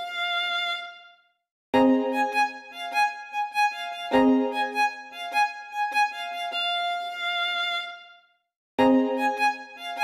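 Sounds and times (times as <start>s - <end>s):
violin music: 0.0s - 1.2s, 1.8s - 8.2s, 8.8s - 10.0s.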